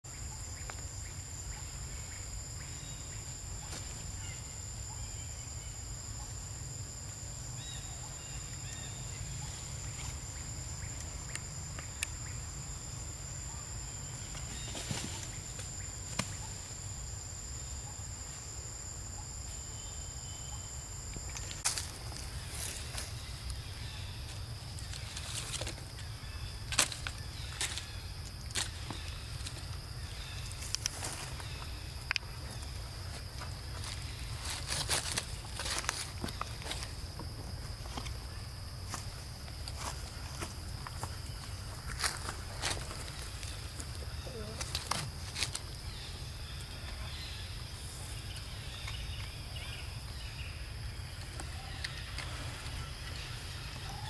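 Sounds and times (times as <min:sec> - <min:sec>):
higher insect tone: 0:00.1 - 0:54.0.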